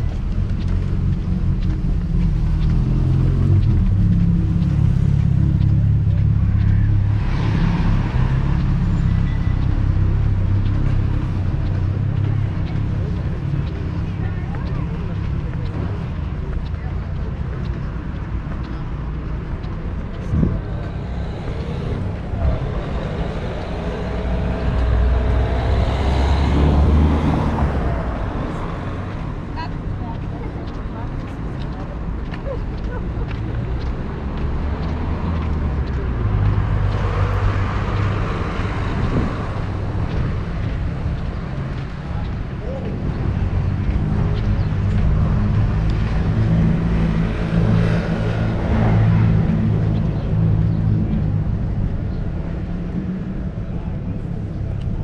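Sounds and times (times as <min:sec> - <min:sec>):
people's voices: 0:00.0 - 0:55.0
vehicle engine running: 0:00.0 - 0:55.0
vehicle passing: 0:00.0 - 0:55.0.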